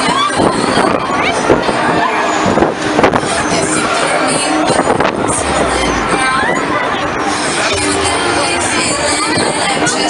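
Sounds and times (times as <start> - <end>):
voices: 0.0 - 10.0
loud rushing noise: 0.4 - 10.0.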